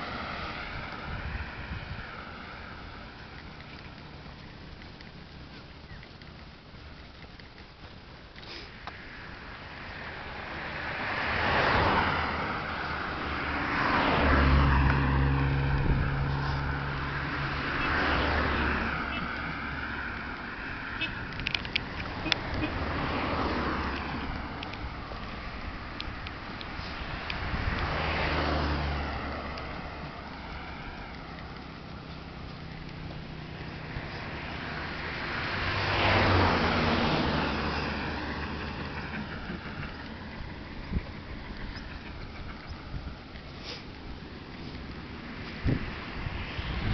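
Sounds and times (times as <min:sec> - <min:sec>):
cars passing by: 0:00.0 - 0:46.9
vehicle driving past: 0:09.1 - 0:26.0, 0:26.8 - 0:43.4.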